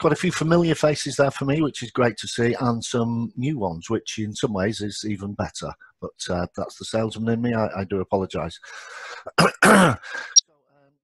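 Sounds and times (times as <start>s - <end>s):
man coughing: 9.3s - 10.4s.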